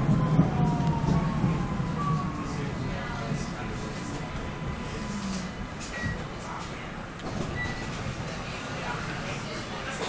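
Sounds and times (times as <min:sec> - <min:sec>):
train interior rumble: 0:00.0 - 0:10.0.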